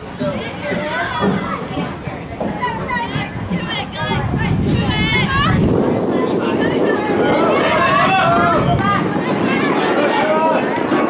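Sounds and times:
children calling out and chattering: 0.0 - 11.0.

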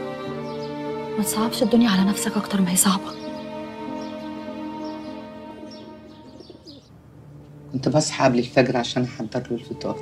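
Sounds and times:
soft background music: 0.0 - 10.0
birds chirping and calling: 0.1 - 8.1.

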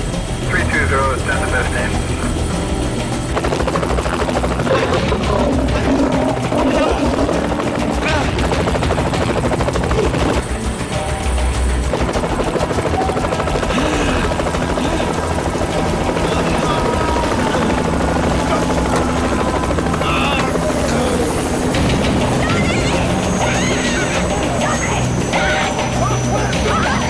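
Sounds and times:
background music: 0.0 - 27.0
helicopter rotor chopping: 0.0 - 27.0.

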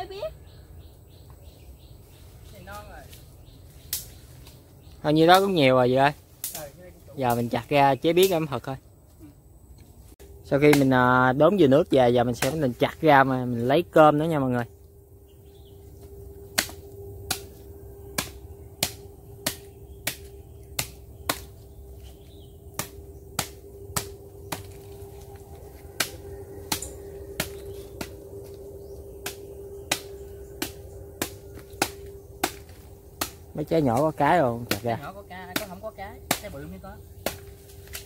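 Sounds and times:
faint steady hum: 0.0 - 38.0
machete chopping fruit: 10.7 - 11.0, 12.4 - 12.7, 16.5 - 24.9, 25.8 - 28.2, 29.2 - 38.0.

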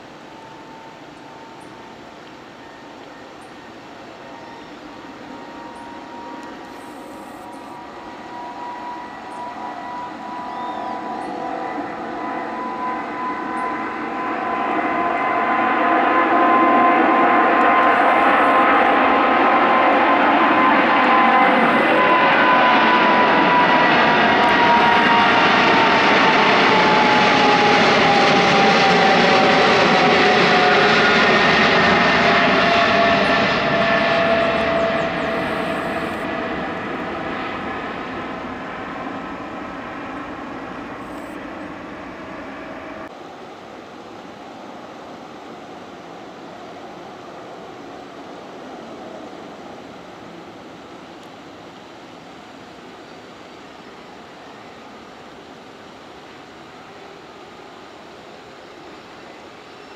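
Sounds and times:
high jet whine: 0.0 - 59.9
jet engines roaring at takeoff: 0.0 - 59.9.

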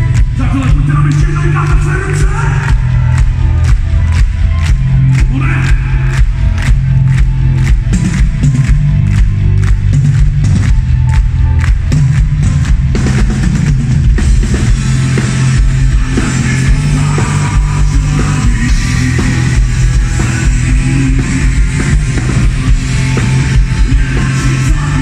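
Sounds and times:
audience clapping along: 0.0 - 18.6
live rock band playing: 0.0 - 25.0.

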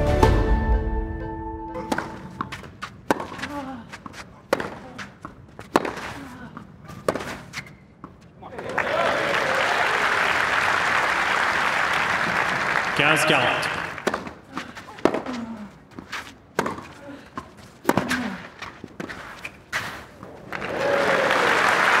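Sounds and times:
tennis ball struck by rackets: 1.8 - 7.6, 14.0 - 14.4, 16.5 - 18.2
crowd applause: 8.5 - 14.1, 20.5 - 22.0.

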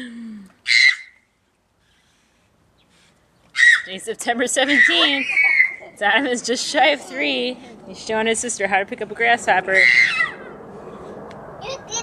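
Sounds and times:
toddler shrieking: 9.8 - 10.6.

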